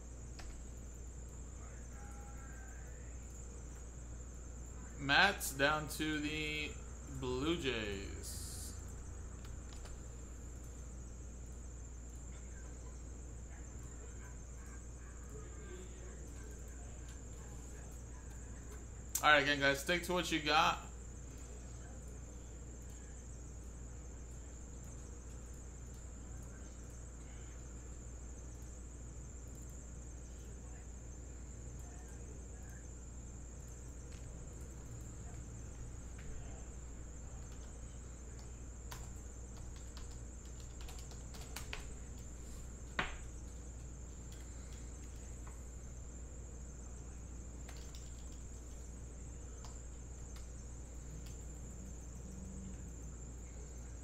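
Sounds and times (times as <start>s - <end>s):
low hum: 20.9s - 54.0s
keyboard and mouse clicks: 37.4s - 45.3s, 47.6s - 48.8s.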